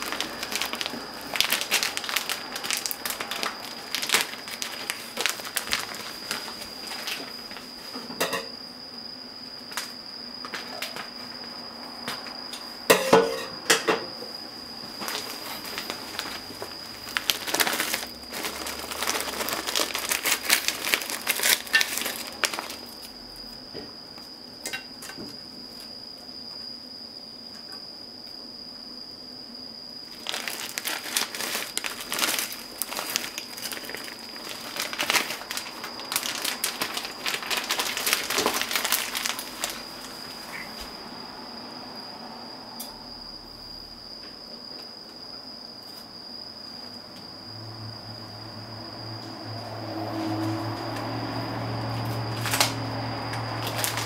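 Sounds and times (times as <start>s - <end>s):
plastic bag crinkling: 0.0s - 7.7s, 15.0s - 23.1s, 30.0s - 40.7s, 53.4s - 54.0s.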